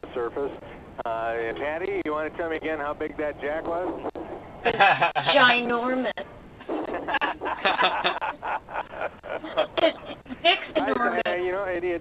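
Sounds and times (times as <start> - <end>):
people talking: 0.0 - 4.1, 4.7 - 6.2, 6.9 - 12.0
people laughing: 4.6 - 5.6, 6.6 - 11.5.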